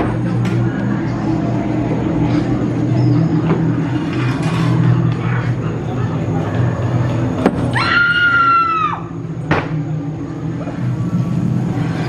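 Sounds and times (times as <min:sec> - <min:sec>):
indistinct voices: 0:00.0 - 0:12.0
low droning ambient soundtrack: 0:00.0 - 0:12.0.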